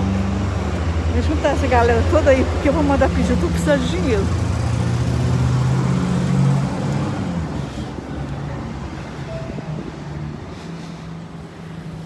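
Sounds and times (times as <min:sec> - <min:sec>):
street traffic: 0:00.0 - 0:12.0
tow truck engine passing: 0:00.0 - 0:12.0.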